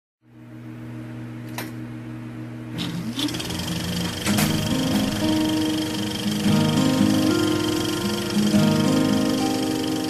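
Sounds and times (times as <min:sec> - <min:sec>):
projector motor hum: 0:00.3 - 0:10.0
projector rising whine: 0:01.9 - 0:10.0
fast mechanical rattle: 0:02.8 - 0:06.5.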